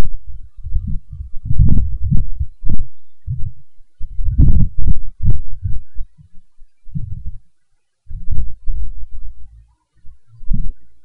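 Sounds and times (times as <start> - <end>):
low thumps and rumbles: 0.0 - 7.4, 8.1 - 10.8.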